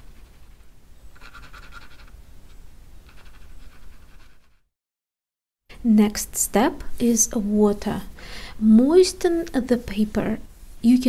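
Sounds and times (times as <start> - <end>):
pencil scratching on paper: 0.0 - 4.7.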